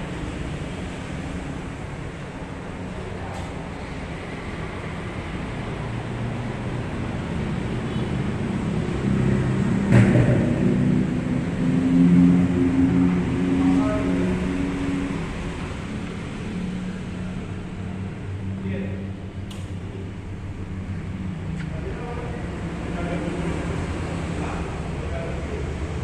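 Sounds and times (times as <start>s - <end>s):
low mechanical rumble and hum: 0.0s - 26.0s
sharp knock: 9.9s - 10.9s.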